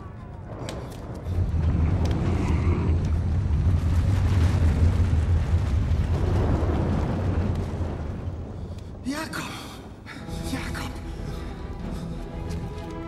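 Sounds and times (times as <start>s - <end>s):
deep earthquake rumble: 0.0s - 13.0s.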